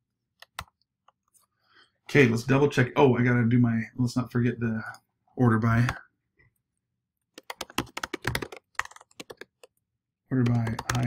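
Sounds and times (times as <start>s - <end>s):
typing on a keyboard: 7.4s - 9.8s, 10.4s - 11.0s.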